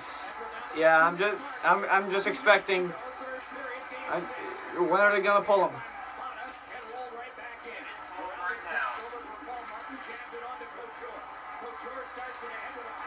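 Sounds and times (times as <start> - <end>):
faint sports commentary: 0.0 - 13.0
television broadcast background sound: 0.0 - 13.0.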